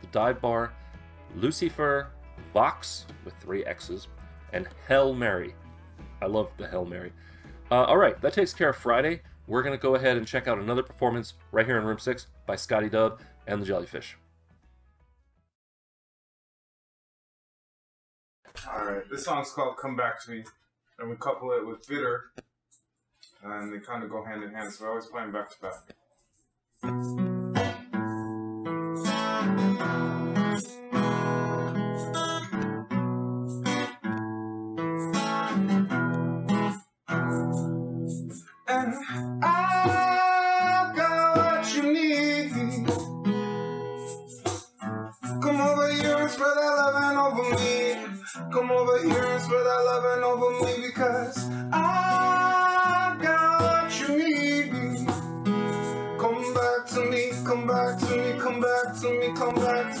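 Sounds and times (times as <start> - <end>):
acoustic guitar playing: 0.0 - 15.0, 26.8 - 60.0
man singing: 38.6 - 43.1, 45.4 - 55.3, 56.2 - 60.0.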